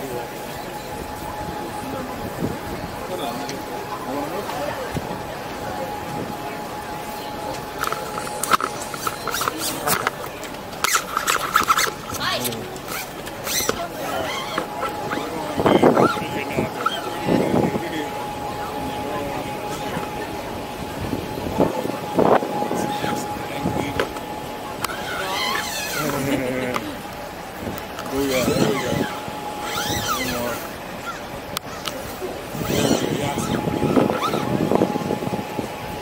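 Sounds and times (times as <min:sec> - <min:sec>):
bus running noise: 0:00.0 - 0:36.0
chatter of voices: 0:00.0 - 0:36.0
high wavering squeal: 0:00.0 - 0:36.0
street noise: 0:00.0 - 0:36.0
scattered clicks and knocks: 0:07.5 - 0:13.9.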